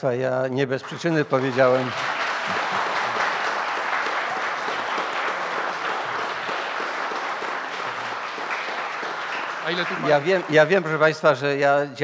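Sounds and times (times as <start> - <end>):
audience applauding: 0.7 - 11.8.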